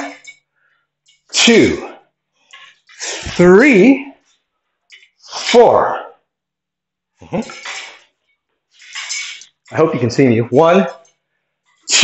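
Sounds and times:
metallic rattle of bladed staff: 0:08.7 - 0:09.7.

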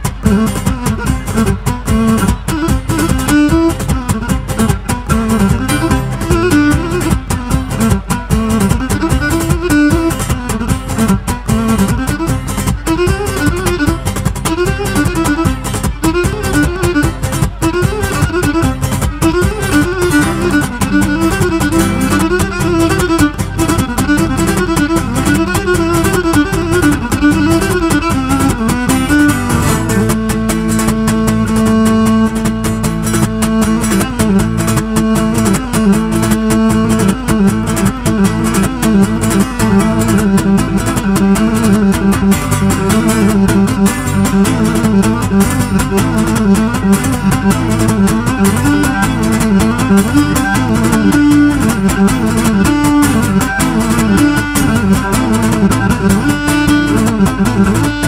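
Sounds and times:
steady percussion beat: 0:00.0 - 0:58.0
strummed lute: 0:00.0 - 0:58.0.

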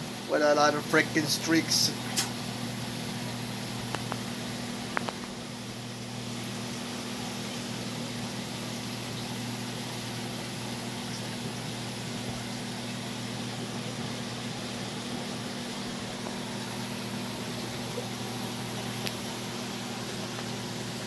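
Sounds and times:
aquarium pumps humming: 0:00.0 - 0:21.0
circulating water: 0:00.0 - 0:21.0.

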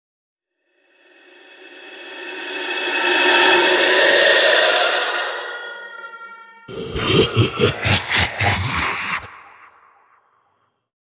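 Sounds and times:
eerie hissing drone: 0:00.7 - 0:10.2.

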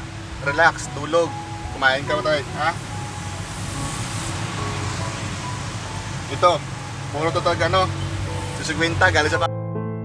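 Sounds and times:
car engine idling: 0:00.0 - 0:09.5
soft background music: 0:00.0 - 0:10.0.

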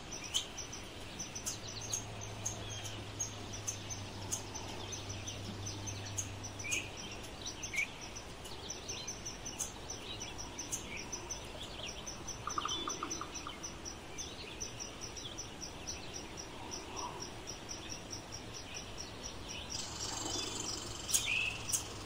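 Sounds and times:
insects chirping: 0:00.0 - 0:22.0
rapid bird trill: 0:00.0 - 0:22.0.

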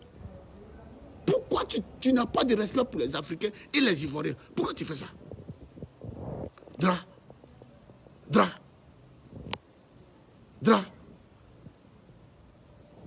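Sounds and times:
man shouting: 0:06.8 - 0:07.1, 0:08.3 - 0:08.6, 0:10.6 - 0:11.0.

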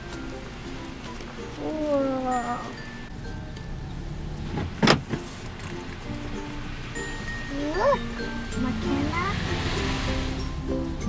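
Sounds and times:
soft background music: 0:00.0 - 0:11.0
drawn-out voice-like call: 0:01.6 - 0:03.0, 0:07.5 - 0:09.6.

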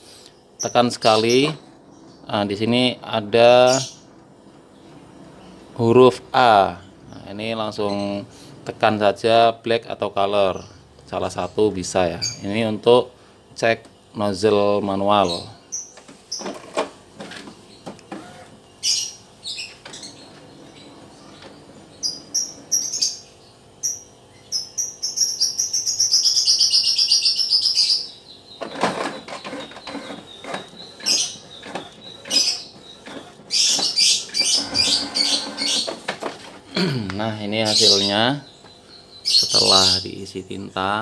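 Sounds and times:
printer motor hum: 0:16.0 - 0:23.8, 0:28.6 - 0:36.9
printer high whine: 0:16.4 - 0:18.6, 0:28.6 - 0:36.6.

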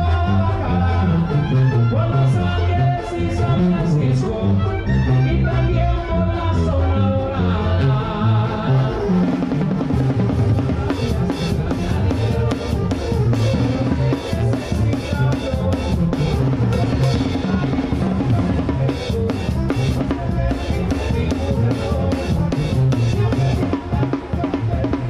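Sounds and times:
tuba bass line: 0:00.0 - 0:25.0
fast snare and drum pattern: 0:09.2 - 0:25.0.

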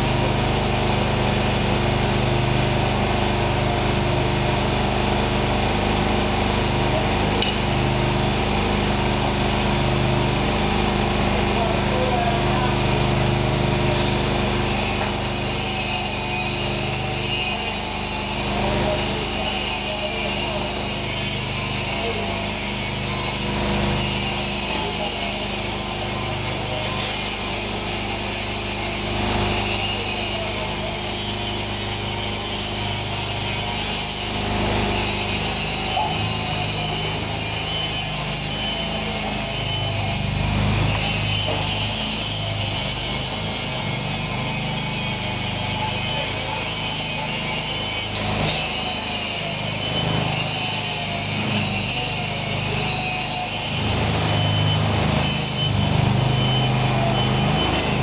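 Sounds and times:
steady high whine: 0:00.0 - 0:58.0
cart engine humming: 0:51.2 - 0:58.0.

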